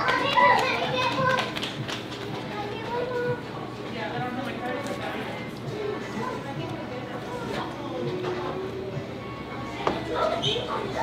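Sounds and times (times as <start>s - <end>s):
background chatter with children: 0.0s - 11.0s.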